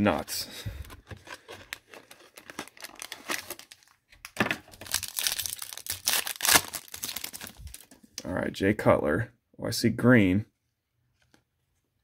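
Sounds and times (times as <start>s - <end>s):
foil pack crinkling: 1.0s - 8.0s
foil pack tearing open: 1.3s - 3.9s, 4.7s - 7.8s.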